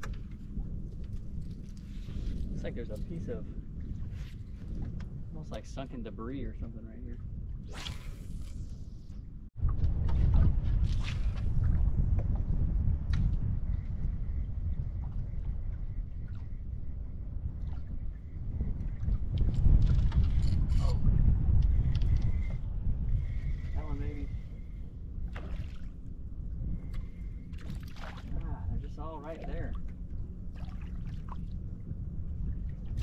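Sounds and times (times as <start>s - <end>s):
wind buffeting microphone: 0.0s - 33.0s
water lapping against hull: 13.7s - 20.0s, 23.2s - 33.0s.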